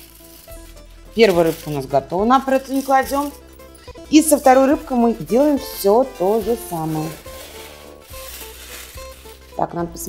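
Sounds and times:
aluminium foil crinkling: 0.0s - 10.0s
quiet background music: 0.0s - 10.0s.

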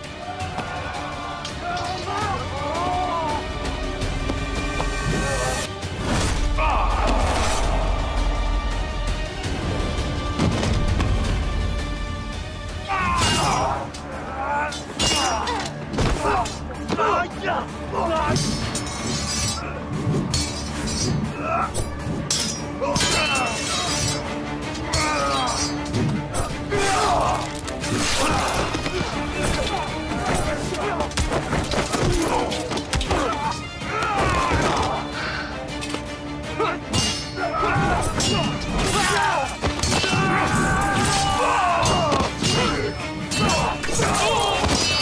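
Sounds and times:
men shouting: 0.0s - 4.2s, 6.5s - 9.6s, 12.7s - 20.0s, 22.6s - 35.6s, 36.3s - 45.0s
background music: 0.0s - 45.0s
dramatic film score: 0.0s - 45.0s
metal blades clashing: 14.6s - 16.6s, 18.0s - 33.8s, 35.7s - 45.0s.

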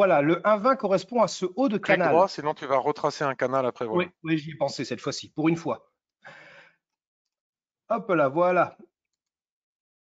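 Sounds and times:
man speaking: 0.0s - 6.0s.

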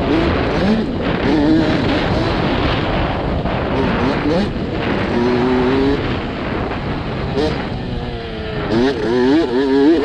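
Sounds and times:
dirt bike engine revving: 0.0s - 10.0s
steady rush of noise: 0.0s - 10.0s.

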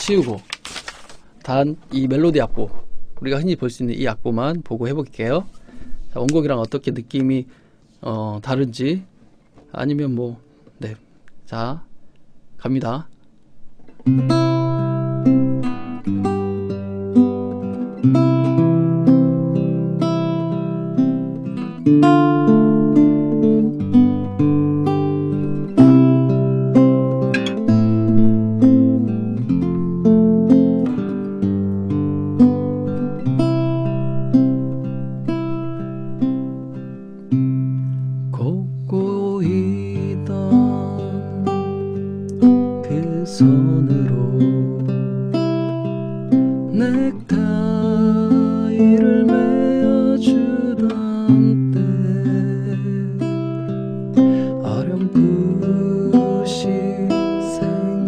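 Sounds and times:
fingerstyle classical guitar: 13.7s - 58.0s.

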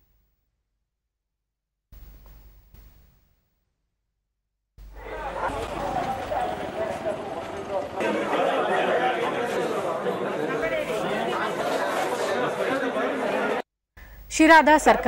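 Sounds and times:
crowd babble: 4.9s - 13.6s.

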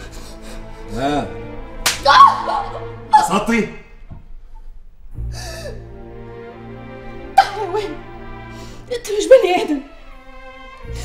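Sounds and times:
soft background music: 0.0s - 11.0s
woman sobbing: 7.4s - 8.0s.

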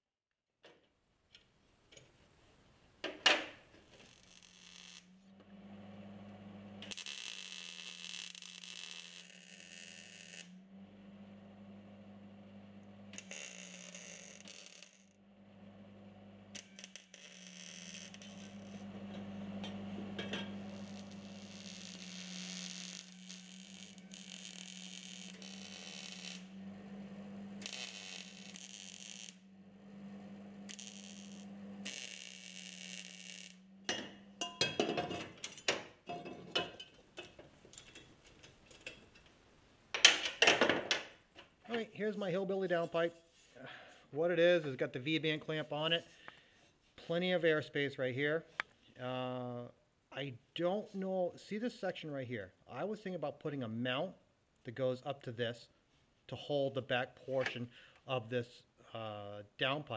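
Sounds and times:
welding hissing crackle: 3.7s - 5.3s, 6.8s - 10.6s, 13.1s - 15.1s, 16.5s - 18.9s, 20.6s - 26.5s, 27.6s - 29.4s, 30.7s - 33.6s
steady low hum: 26.4s - 27.7s.

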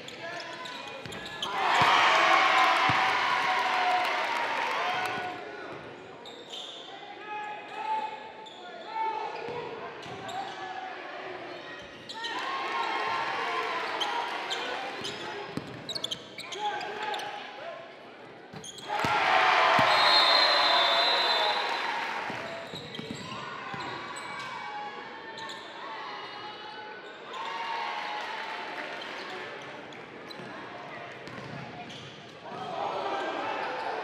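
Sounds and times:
crowd noise surge: 18.8s - 22.6s
basketball bouncing on court: 22.3s - 24.0s.

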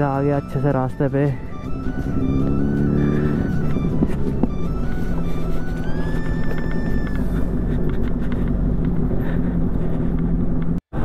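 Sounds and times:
background music: 0.0s - 8.1s
motorcycle engine on gravel road: 1.5s - 11.0s.

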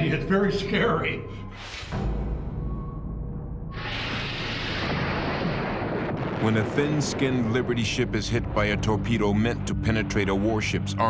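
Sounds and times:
explosion roar: 3.7s - 9.1s.

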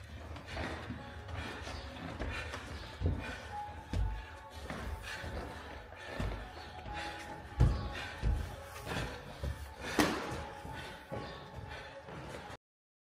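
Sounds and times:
background music: 0.0s - 12.6s
feet on ring canvas: 4.1s - 10.6s.

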